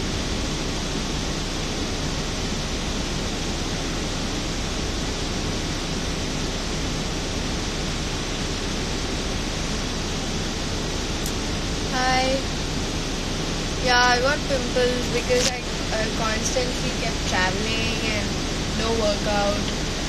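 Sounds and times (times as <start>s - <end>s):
low hum: 0.0s - 20.0s
steady rushing noise: 0.0s - 20.0s.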